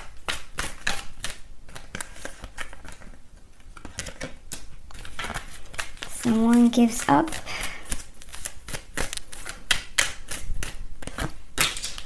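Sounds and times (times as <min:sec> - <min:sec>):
cards clicking and snapping: 0:00.0 - 0:03.1, 0:03.8 - 0:12.0.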